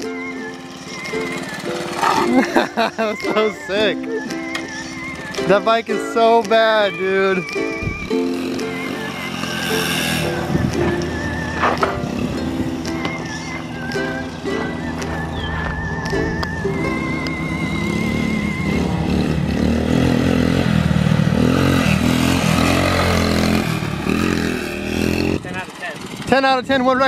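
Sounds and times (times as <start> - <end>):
background music: 0.0 - 25.4
mini bike engine running: 0.0 - 27.0.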